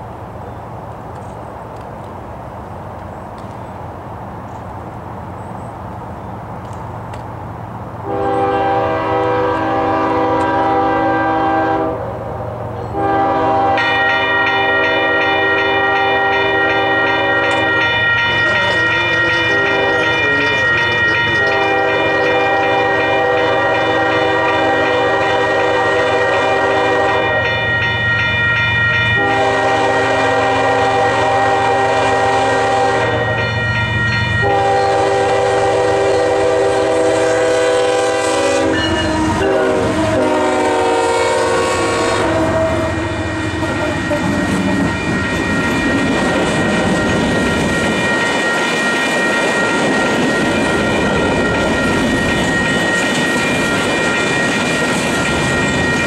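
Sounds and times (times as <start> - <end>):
low rumble of locomotive engines: 0.0 - 56.0
locomotive air horn blasts: 8.0 - 12.1, 12.9 - 27.9, 29.2 - 33.8, 34.4 - 45.1.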